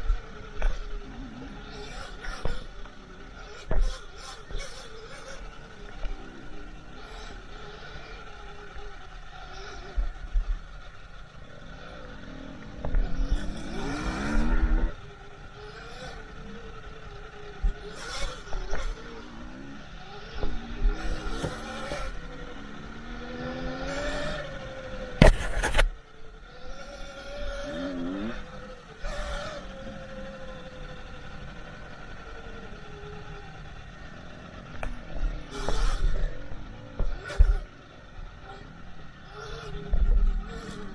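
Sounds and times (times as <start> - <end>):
electric motor whine: 0.0 - 40.9
tyres rumbling on rough ground: 0.0 - 40.9.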